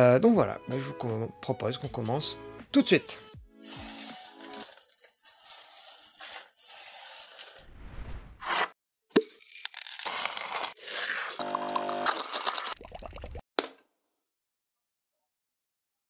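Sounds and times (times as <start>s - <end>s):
coffee beans rattling and crunching: 3.6s - 7.6s, 9.2s - 12.8s.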